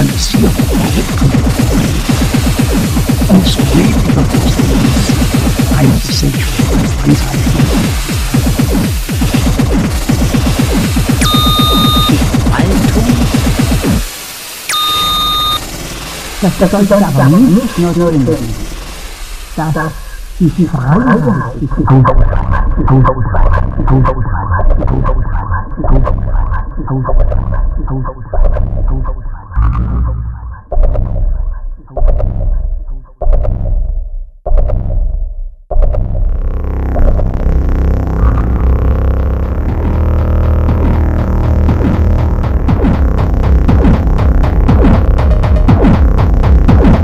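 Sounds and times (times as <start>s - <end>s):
harsh industrial noise music: 0.0s - 47.0s
synthetic beep dropping in pitch: 11.2s - 12.2s, 14.7s - 15.7s.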